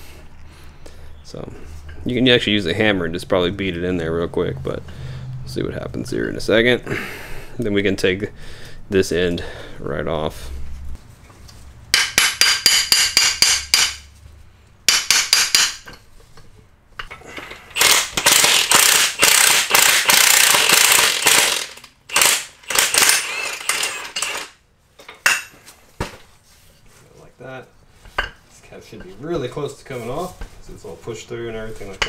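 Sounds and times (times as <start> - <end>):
hammer striking metal: 11.9 - 14.1, 14.9 - 16.0.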